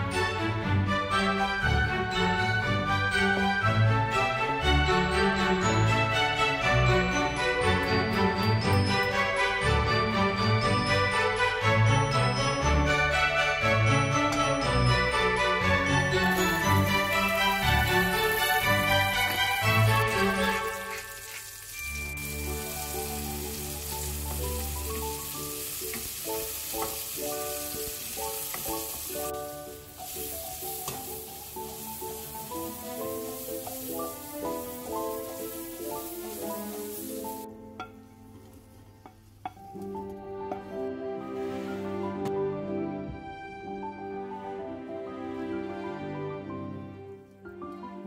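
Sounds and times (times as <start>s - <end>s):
background music: 0.0s - 48.0s
vegetables sizzling in a pan: 16.2s - 37.5s.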